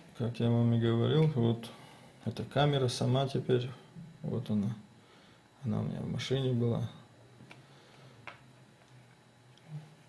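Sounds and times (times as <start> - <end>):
faint steady low hum: 0.0 - 10.0.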